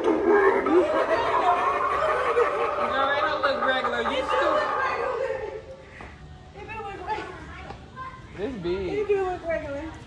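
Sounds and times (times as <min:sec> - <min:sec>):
indistinct talk: 0:00.0 - 0:10.0.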